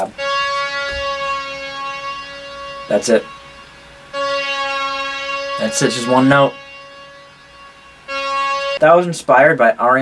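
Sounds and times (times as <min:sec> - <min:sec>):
bright synth note: 0:00.0 - 0:08.8.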